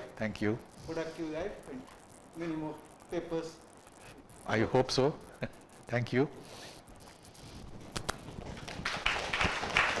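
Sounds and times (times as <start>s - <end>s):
audience applause: 8.5s - 10.0s.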